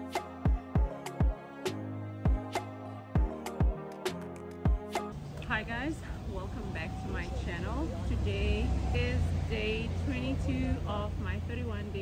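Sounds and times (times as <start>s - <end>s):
woman speaking: 5.4s - 12.0s.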